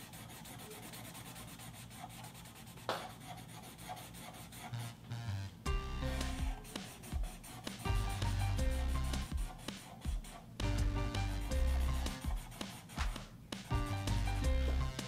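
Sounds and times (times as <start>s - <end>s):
marker rubbing on paper: 0.0s - 4.9s, 6.1s - 14.4s
light background music: 4.8s - 15.0s.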